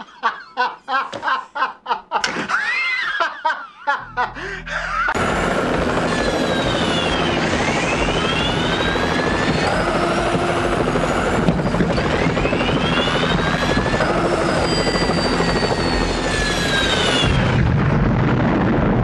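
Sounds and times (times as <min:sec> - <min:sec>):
deeper rumble: 0:04.0 - 0:19.0
helicopter engine and rotor: 0:05.1 - 0:18.6.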